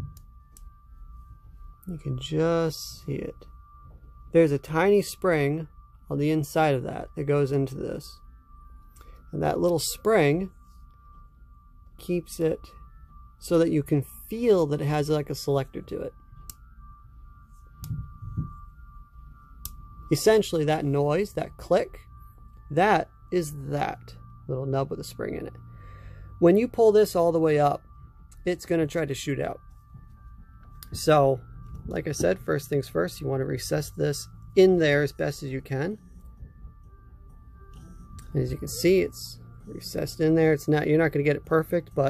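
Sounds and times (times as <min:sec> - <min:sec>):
faint whistle-like tone: 0:00.0 - 0:42.0
low hum: 0:00.0 - 0:42.0.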